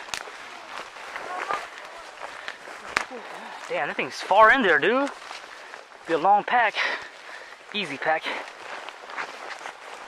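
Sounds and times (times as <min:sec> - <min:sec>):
footsteps through undergrowth: 0:00.0 - 0:10.0.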